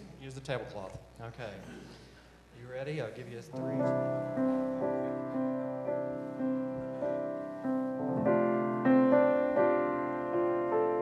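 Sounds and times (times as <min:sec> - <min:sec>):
piano playing chords: 0:03.5 - 0:11.0.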